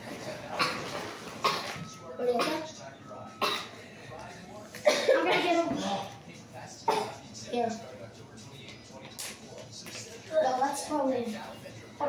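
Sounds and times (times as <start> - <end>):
child's voice: 10.3 - 11.4.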